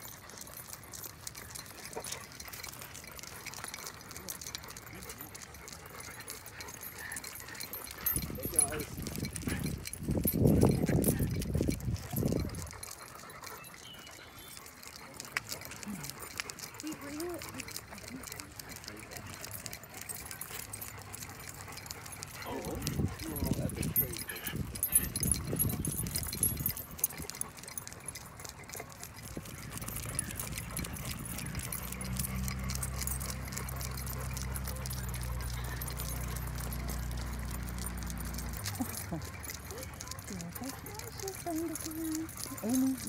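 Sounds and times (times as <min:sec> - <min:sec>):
dog tags jingling: 0:00.0 - 0:43.0
footsteps on paved path: 0:00.0 - 0:43.0
people's voices: 0:00.6 - 0:43.0.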